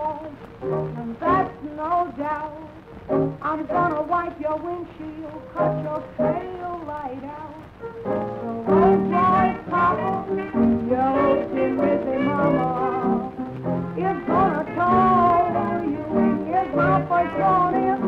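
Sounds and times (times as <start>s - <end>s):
jazz band playing: 0.6s - 1.9s, 7.7s - 18.0s.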